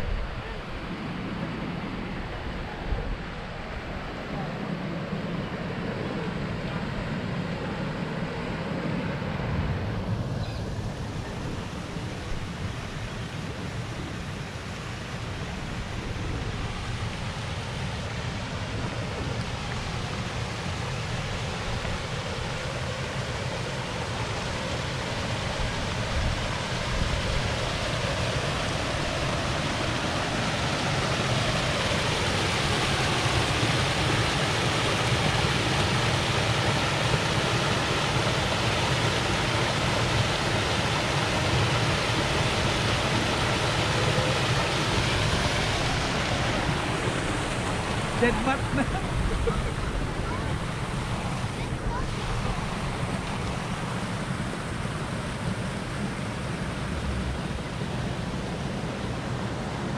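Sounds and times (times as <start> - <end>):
waterfall cascading into pond: 11.8 - 59.9.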